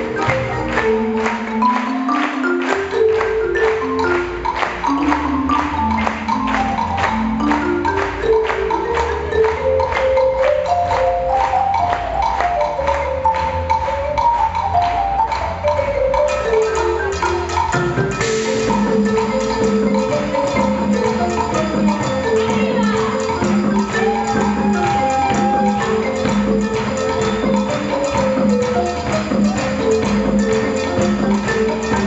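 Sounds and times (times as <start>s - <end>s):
drums and hand percussion: 0.0s - 32.0s
marimba melodic runs: 0.0s - 32.0s.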